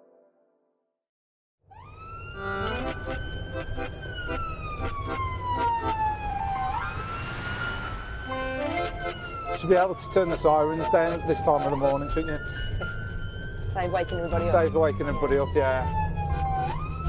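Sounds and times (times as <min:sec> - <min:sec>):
ambulance siren wailing: 0:01.7 - 0:17.0
engine and road rumble: 0:01.8 - 0:17.0.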